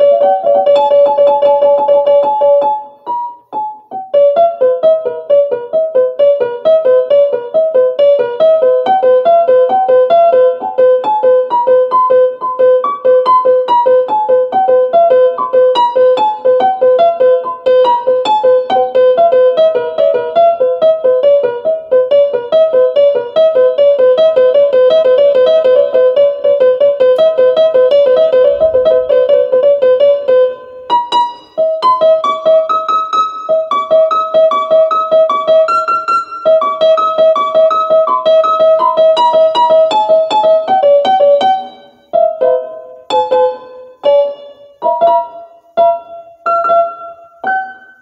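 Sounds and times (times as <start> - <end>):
piano music: 0.0 - 48.0.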